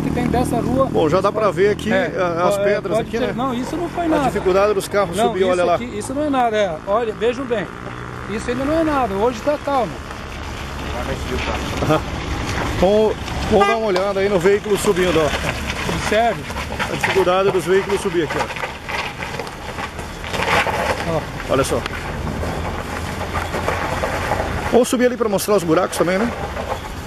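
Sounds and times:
pickup truck engine: 0:00.0 - 0:27.0.

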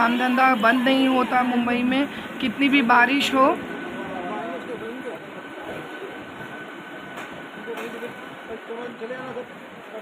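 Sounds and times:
train whine: 0:00.0 - 0:10.0.

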